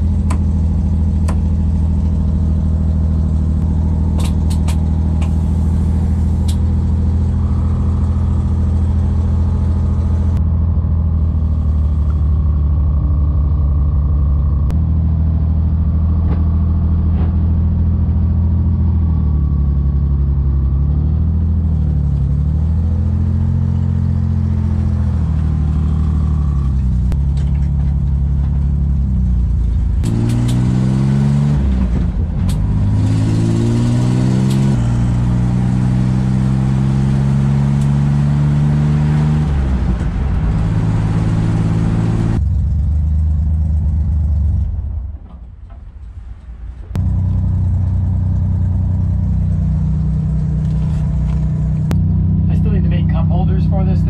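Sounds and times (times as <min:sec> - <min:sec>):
car engine revving while driving: 0:00.0 - 0:45.0, 0:46.9 - 0:54.0.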